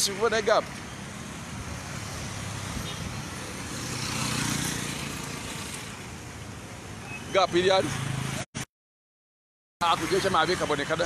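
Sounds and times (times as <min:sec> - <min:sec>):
street traffic noise: 0:00.0 - 0:08.7, 0:09.8 - 0:11.0
motor vehicle passing: 0:01.6 - 0:06.0.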